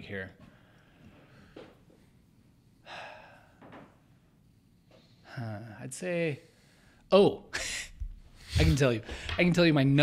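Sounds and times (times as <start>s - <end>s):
faint breath: 0.4s - 2.2s, 2.8s - 3.7s.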